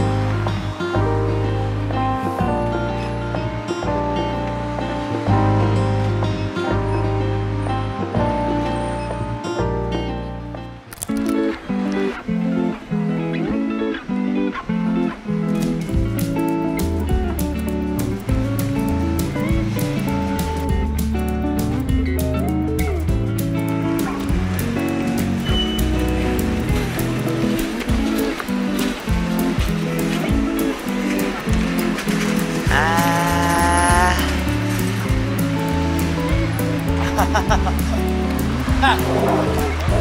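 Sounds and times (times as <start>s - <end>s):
music with bass and chords: 0.0s - 40.0s.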